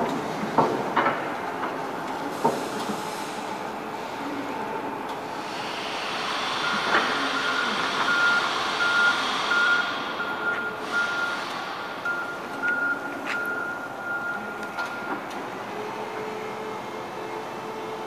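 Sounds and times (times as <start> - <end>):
forklift moving hiss: 2.2 - 4.5, 5.2 - 18.0
reversing alarm beeping: 6.4 - 17.4.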